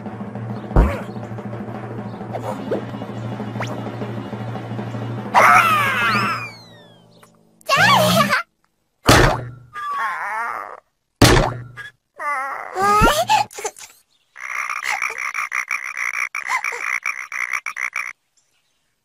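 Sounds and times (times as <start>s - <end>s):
cartoon hits: 0.7s - 1.2s, 9.1s - 9.8s, 11.2s - 11.9s
wobbling comic tones: 0.7s - 1.2s, 5.2s - 8.4s, 9.1s - 9.8s
cartoon frogs croaking: 14.3s - 18.2s.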